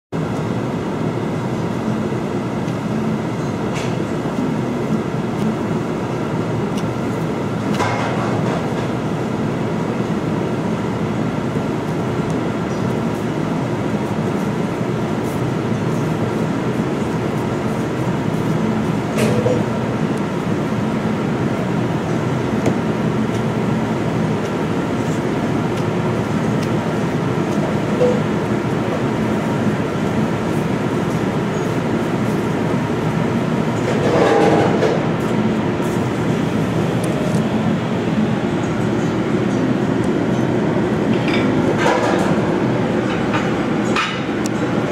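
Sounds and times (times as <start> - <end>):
ventilation machine drone: 0.1 - 44.9.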